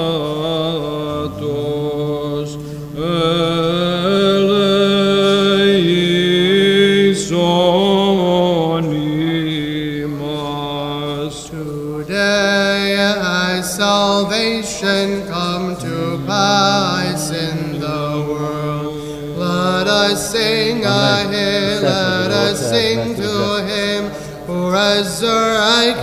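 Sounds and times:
low steady drone voice: 0:00.0 - 0:11.9, 0:15.3 - 0:26.0
chanters singing chant: 0:00.0 - 0:26.0.

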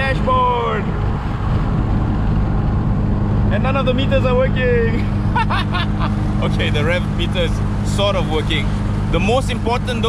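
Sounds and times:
car engine droning: 0:00.0 - 0:10.0
road and wind noise: 0:00.0 - 0:10.0.

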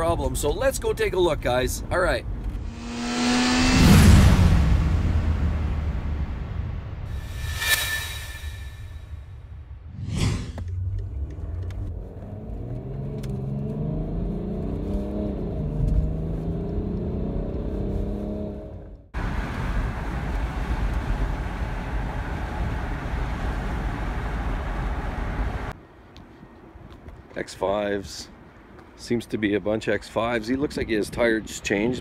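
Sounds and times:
car engine accelerating: 0:02.4 - 0:07.6, 0:10.6 - 0:25.7
quiet outdoor ambience: 0:10.6 - 0:32.0
tyre and wind noise: 0:14.6 - 0:29.1.

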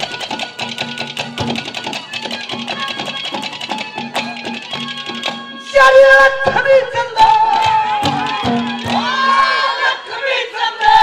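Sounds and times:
fast steady drumming: 0:00.0 - 0:05.6, 0:06.3 - 0:09.7.

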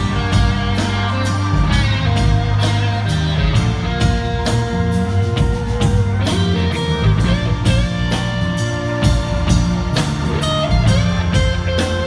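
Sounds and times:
drum kit beat: 0:00.0 - 0:12.0
electric bass: 0:00.0 - 0:12.0
electric guitar lead with bends: 0:00.0 - 0:12.0.

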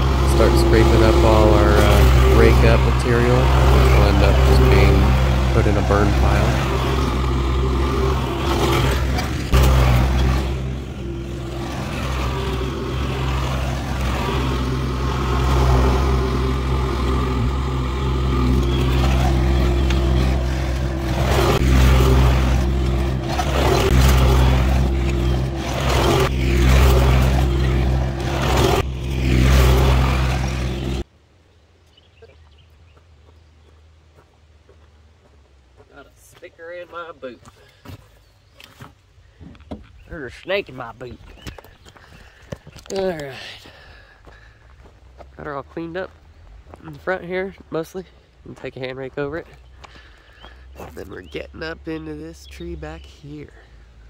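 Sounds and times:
skid steer engine running: 0:00.0 - 0:31.1.

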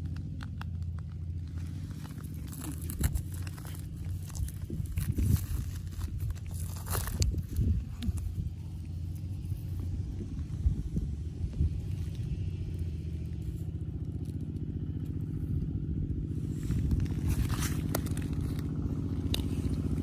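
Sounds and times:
small engine droning: 0:00.0 - 0:20.0.

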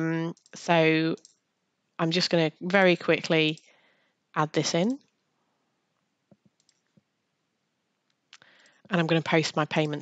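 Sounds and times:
computer mouse clicking: 0:00.3 - 0:00.6, 0:01.2 - 0:01.4, 0:06.3 - 0:07.1.

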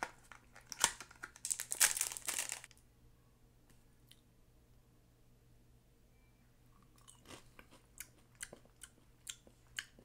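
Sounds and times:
crunching while chewing: 0:06.9 - 0:10.0.

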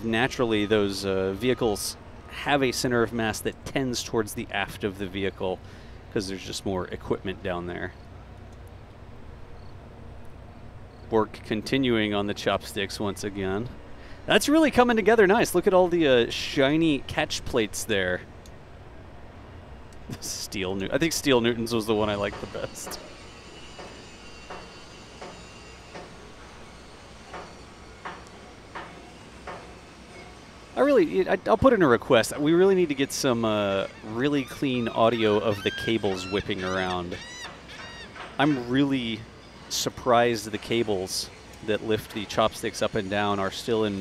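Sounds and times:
steady background hiss: 0:00.0 - 0:44.0
distant hammering on metal: 0:22.2 - 0:30.6.

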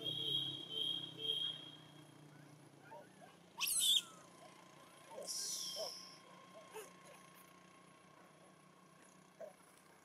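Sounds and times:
monkey squealing: 0:03.6 - 0:04.2, 0:05.2 - 0:06.1.

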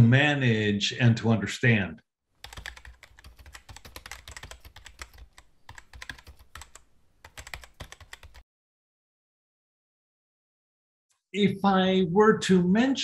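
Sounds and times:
computer keyboard key clicks: 0:02.5 - 0:08.4.

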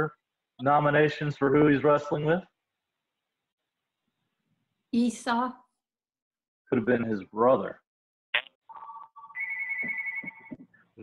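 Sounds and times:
electronic phone ringtone: 0:08.7 - 0:10.6.

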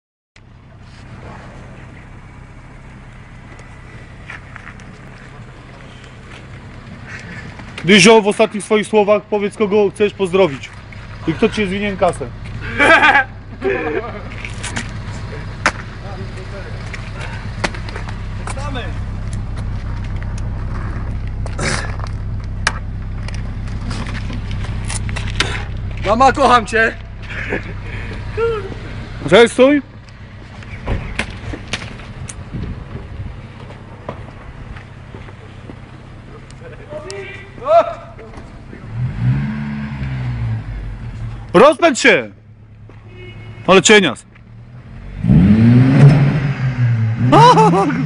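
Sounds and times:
car engine idling: 0:00.4 - 0:45.2
voices: 0:05.2 - 0:20.5, 0:25.4 - 0:31.2, 0:36.1 - 0:39.0
car engine revving: 0:38.2 - 0:41.6, 0:44.4 - 0:48.0.

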